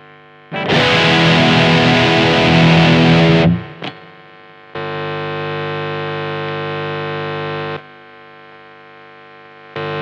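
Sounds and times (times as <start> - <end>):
guitar pickup buzzing hum: 0.0 - 10.0
distorted electric guitar chord: 0.5 - 4.3.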